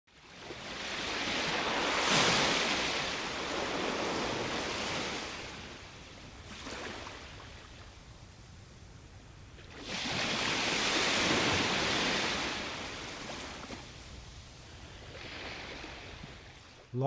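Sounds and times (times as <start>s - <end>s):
ocean waves washing onto shore: 0.2s - 8.7s, 9.4s - 17.0s.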